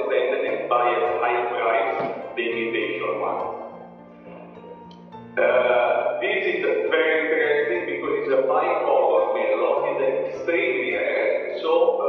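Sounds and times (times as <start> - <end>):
sustained music notes: 0.0 - 12.0.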